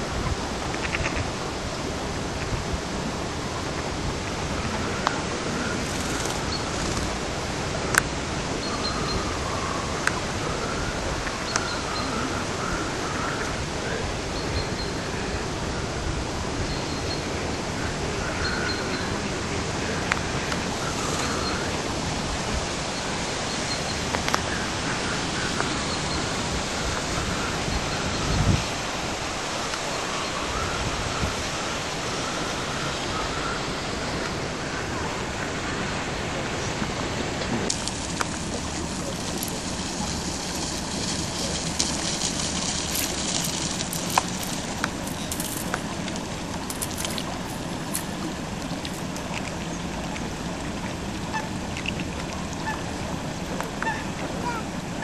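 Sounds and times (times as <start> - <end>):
steady rushing outdoor noise: 0.0 - 55.0.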